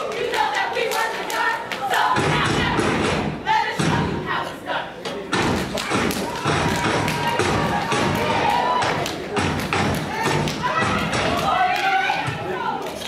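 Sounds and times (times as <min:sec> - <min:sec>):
voices: 0:00.0 - 0:13.0
rhythmic foot stomps: 0:02.0 - 0:04.2, 0:05.2 - 0:12.4
hand claps: 0:05.4 - 0:12.2.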